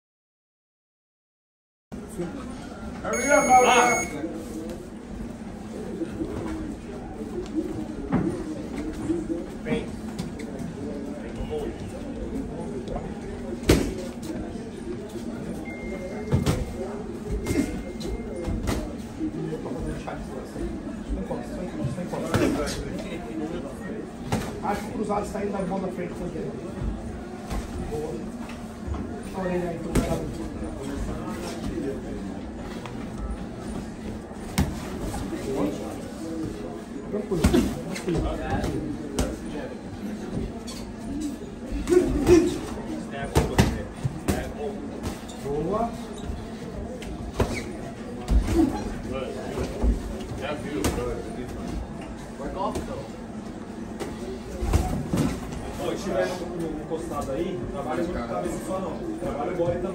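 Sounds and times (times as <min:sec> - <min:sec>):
murmur of gym: 0:01.9 - 0:59.9.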